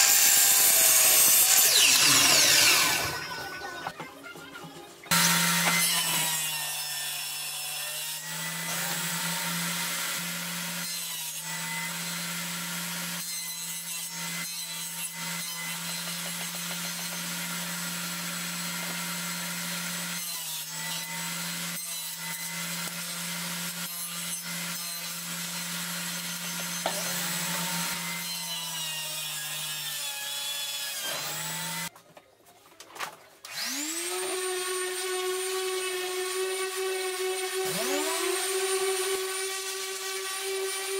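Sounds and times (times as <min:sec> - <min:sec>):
table saw cutting flooring: 0:00.0 - 0:03.9, 0:05.1 - 0:31.9, 0:33.4 - 0:40.9.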